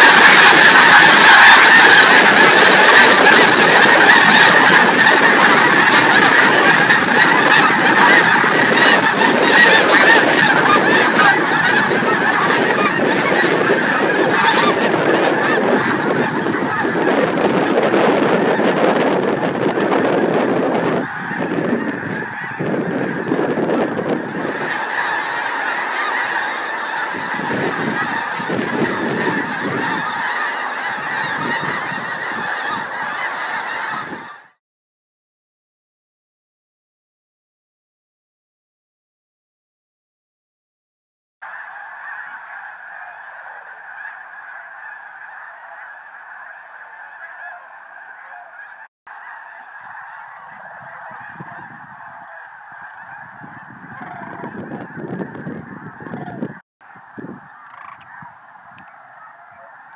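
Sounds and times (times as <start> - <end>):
flock of geese honking: 0.0 - 34.6, 41.4 - 59.9.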